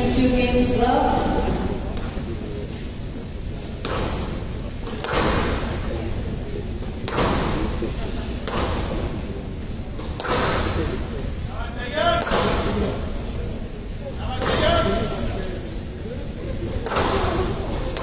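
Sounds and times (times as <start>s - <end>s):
squash ball struck by racket: 3.8s - 4.3s, 4.9s - 5.7s, 7.0s - 7.6s, 8.4s - 9.0s, 10.1s - 10.8s, 12.2s - 12.7s, 16.8s - 17.4s.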